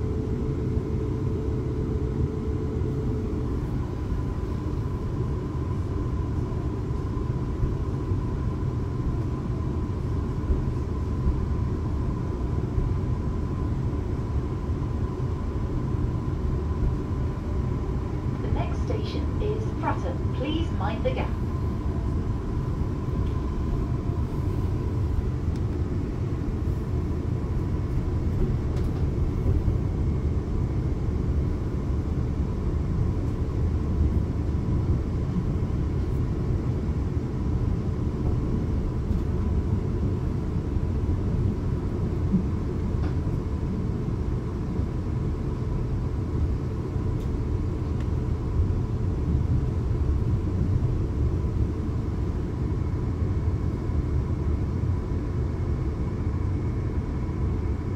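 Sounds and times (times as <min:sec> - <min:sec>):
faint high whine: 0:16.9 - 0:25.2.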